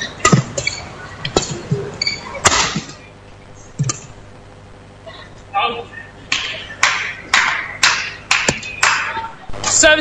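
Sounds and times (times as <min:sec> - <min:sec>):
rackets hitting shuttlecock: 0:00.1 - 0:03.0, 0:06.3 - 0:09.3.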